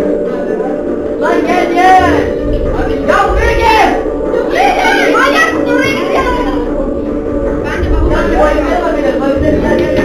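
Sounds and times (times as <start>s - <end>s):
background music: 0.0s - 10.0s
excited high-pitched voices talking: 1.1s - 10.0s.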